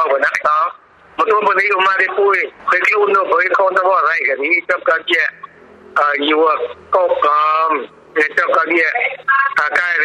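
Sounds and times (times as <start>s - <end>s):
radio news voice: 0.0s - 10.0s.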